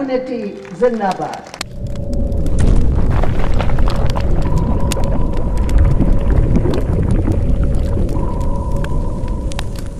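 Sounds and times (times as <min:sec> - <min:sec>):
sharp crackles: 0:00.0 - 0:09.9
steady hum: 0:00.0 - 0:09.9
deep rumble: 0:01.6 - 0:09.9.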